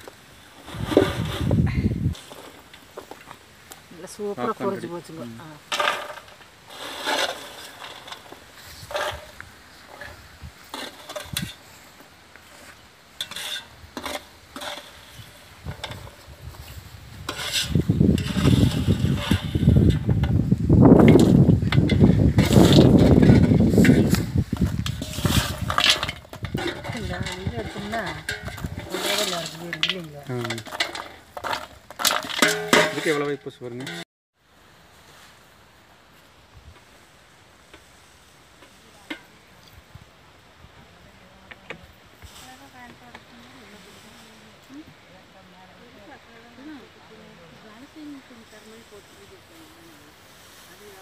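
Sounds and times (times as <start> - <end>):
steady hiss: 0.0 - 26.5, 34.4 - 51.0
faint background noise: 0.0 - 51.0
person speaking: 3.9 - 5.7, 26.6 - 30.7.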